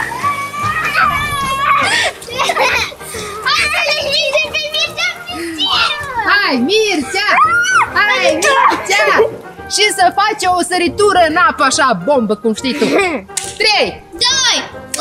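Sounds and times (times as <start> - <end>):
children laughing and shouting: 0.0 - 9.5, 12.6 - 14.7
background music: 0.0 - 15.0.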